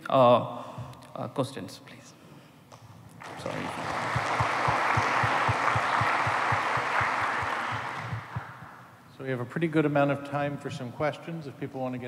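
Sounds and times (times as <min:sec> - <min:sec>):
audience applauding: 0:03.2 - 0:08.8.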